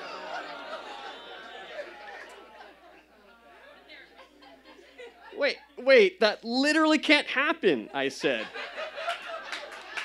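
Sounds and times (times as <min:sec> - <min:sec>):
audience chuckling and chatter: 0:00.0 - 0:05.8, 0:07.9 - 0:10.0.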